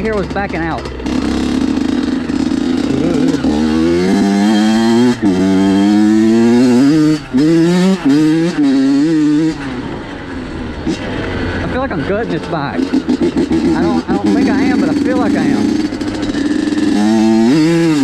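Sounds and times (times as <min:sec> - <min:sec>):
two-stroke dirt bike engine revving: 0:00.0 - 0:18.0.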